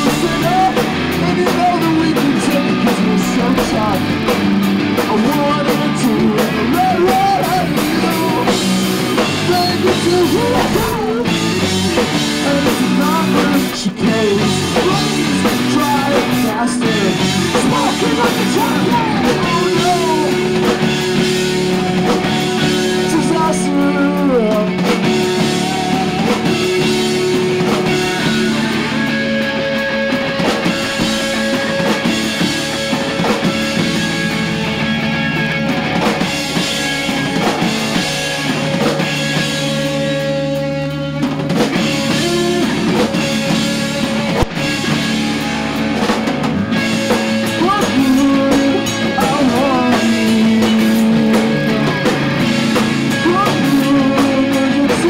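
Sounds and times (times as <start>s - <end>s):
drum kit: 0.0s - 55.0s
electric guitars: 0.0s - 55.0s.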